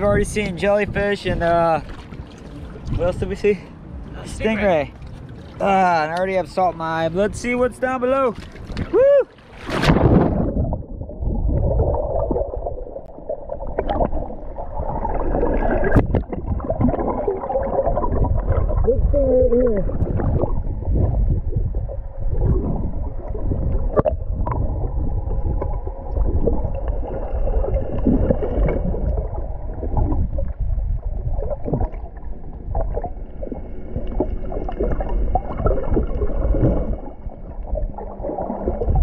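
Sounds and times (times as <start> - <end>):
muffled underwater churning rumble: 0.0 - 39.0.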